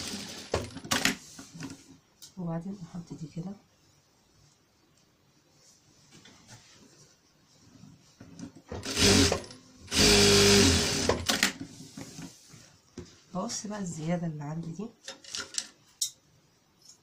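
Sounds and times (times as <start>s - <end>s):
electric sewing machine stitching: 0.0s - 1.1s, 8.8s - 11.5s.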